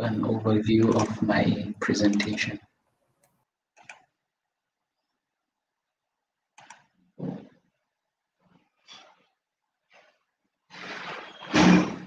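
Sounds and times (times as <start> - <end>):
person's voice through microphone: 0.0 - 2.6.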